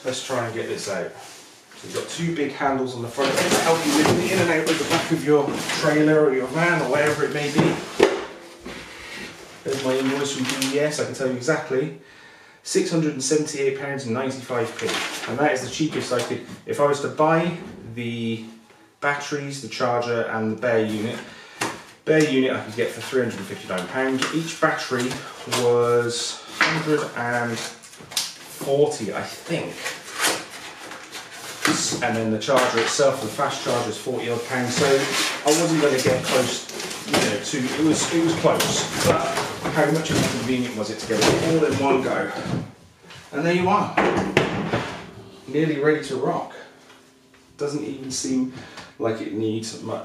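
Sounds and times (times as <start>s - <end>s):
cardboard and paper rustling: 3.0s - 8.4s, 9.6s - 10.9s, 14.6s - 16.3s, 26.4s - 42.7s.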